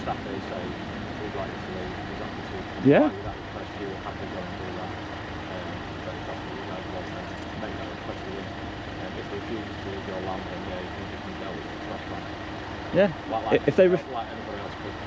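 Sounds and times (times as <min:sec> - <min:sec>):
faint indistinct voices: 0:00.0 - 0:04.9, 0:05.5 - 0:12.3, 0:12.9 - 0:15.0
low background hum: 0:00.0 - 0:15.0.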